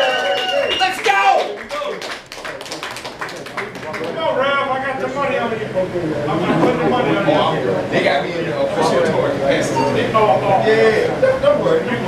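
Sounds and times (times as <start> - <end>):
audience clapping: 0.0 - 4.3.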